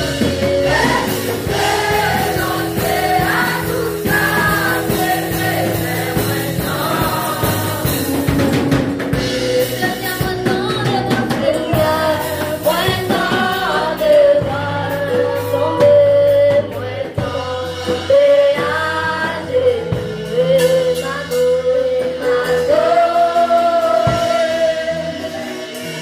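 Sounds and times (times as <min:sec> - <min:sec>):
drum kit: 0:00.0 - 0:26.0
voices singing along: 0:00.0 - 0:26.0.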